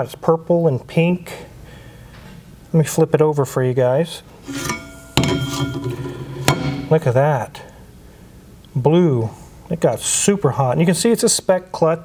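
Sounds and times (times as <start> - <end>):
metal disc clanking on flywheel: 4.5 - 7.0
sharp metal clink: 4.5 - 7.0.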